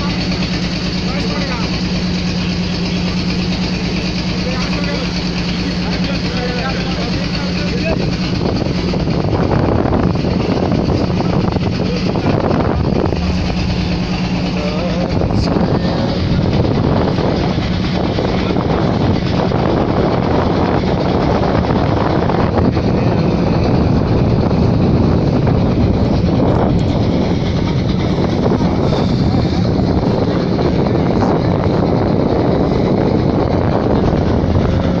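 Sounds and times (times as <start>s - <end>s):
boat engine droning: 0.0s - 35.0s.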